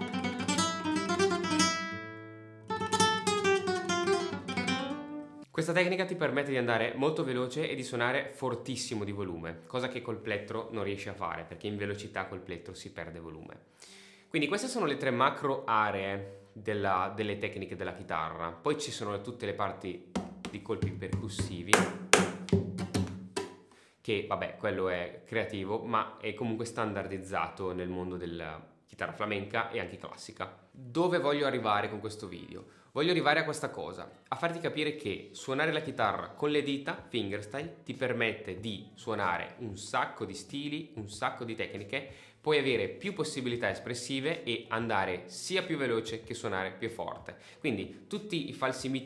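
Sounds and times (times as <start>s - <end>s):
percussive guitar strumming: 0.0s - 5.4s, 20.2s - 23.6s.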